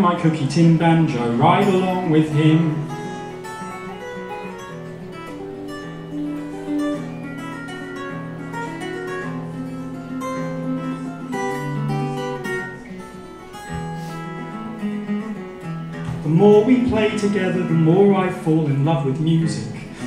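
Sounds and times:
solo acoustic guitar: 0.0 - 20.0.

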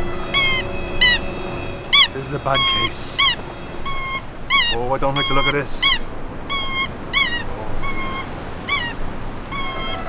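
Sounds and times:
bird honking: 0.0 - 10.0.

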